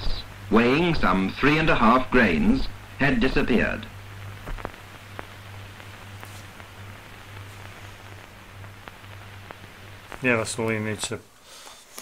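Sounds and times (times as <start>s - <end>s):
low hum: 0.0s - 10.3s
film soundtrack hiss: 0.0s - 12.0s.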